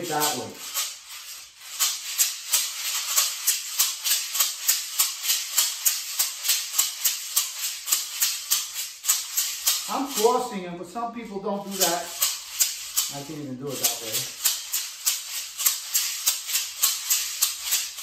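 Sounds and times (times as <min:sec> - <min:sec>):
maracas shaking: 0:00.0 - 0:18.0.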